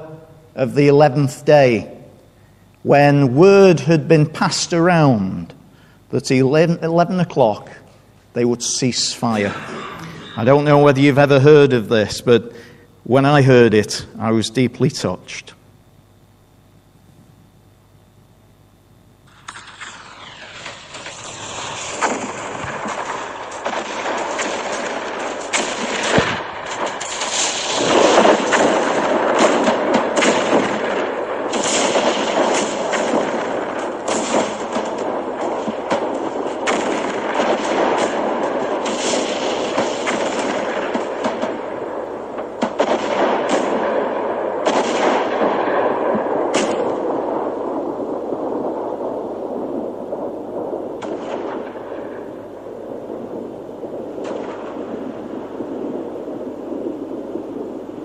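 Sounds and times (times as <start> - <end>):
artillery and gunfire: 19.2 - 58.0.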